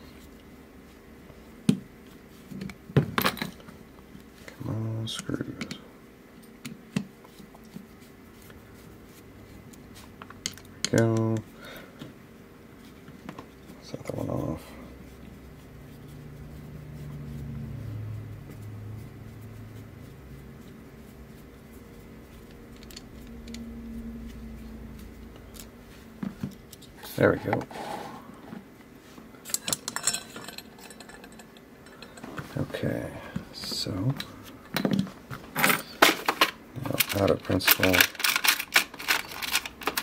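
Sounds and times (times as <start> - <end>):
small metal parts clinking: 29.4 - 32.2, 35.6 - 40.0.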